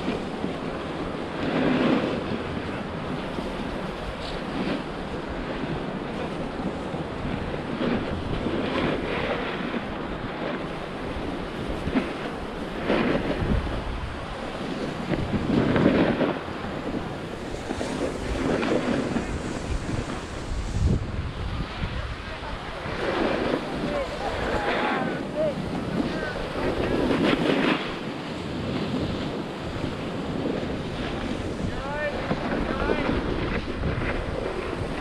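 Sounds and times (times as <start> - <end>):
wind on microphone: 0.0 - 35.0
ski edges scraping snow: 4.1 - 6.4, 14.6 - 21.1, 22.2 - 35.0.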